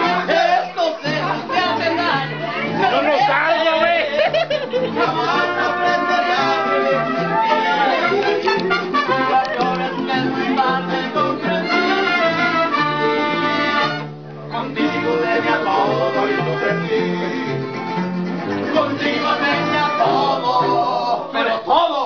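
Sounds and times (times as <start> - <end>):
mariachi band playing: 0.0 - 22.0.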